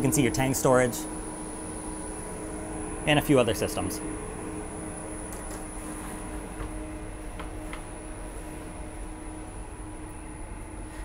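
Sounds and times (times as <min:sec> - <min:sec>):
machinery and air-handling hum: 0:00.0 - 0:11.0.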